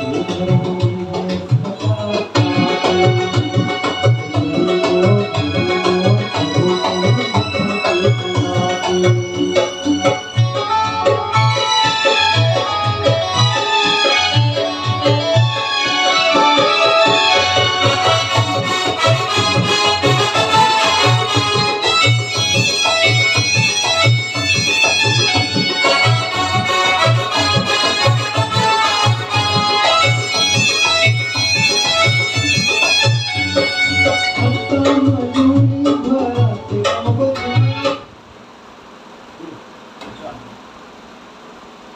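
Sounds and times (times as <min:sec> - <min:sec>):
electronic keyboard melody: 0:00.0 - 0:38.1.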